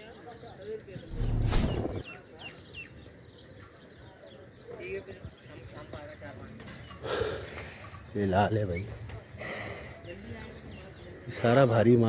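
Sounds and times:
faint background voices: 0.0 - 12.0.

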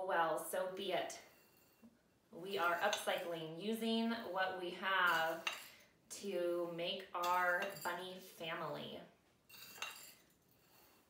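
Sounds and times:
metal cup clink: 5.1 - 5.8, 7.2 - 8.0, 9.5 - 11.0.

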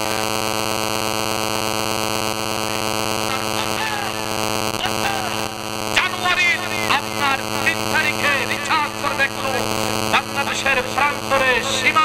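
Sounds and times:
man preaching through loudspeakers: 0.0 - 0.3, 2.7 - 12.0
electrical hum: 0.0 - 12.0.

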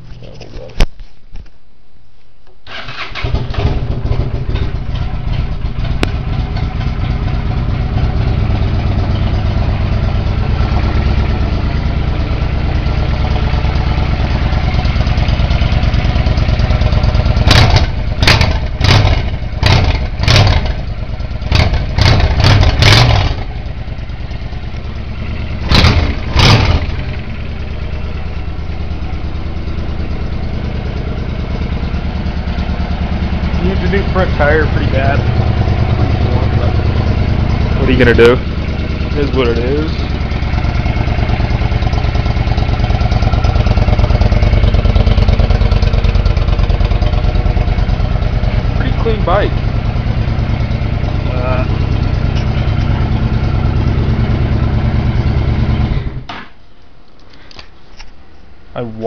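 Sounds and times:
motorcycle engine starting and idling: 2.6 - 58.2
engine revving: 2.7 - 30.4, 31.0 - 56.3.

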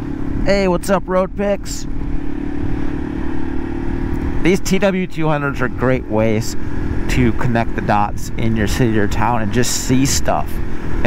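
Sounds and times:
wind noise: 0.0 - 4.6
motorcycle engine running: 0.0 - 11.0.

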